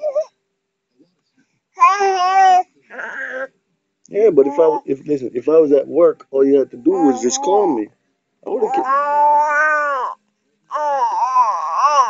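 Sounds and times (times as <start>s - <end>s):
baby cooing: 0.0s - 0.3s, 1.8s - 3.5s, 4.2s - 5.0s, 6.9s - 7.9s, 8.5s - 12.0s.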